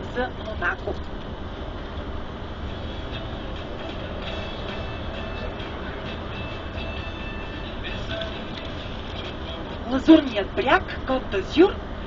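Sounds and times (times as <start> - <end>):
coach engine and tyre rumble: 0.0 - 12.0.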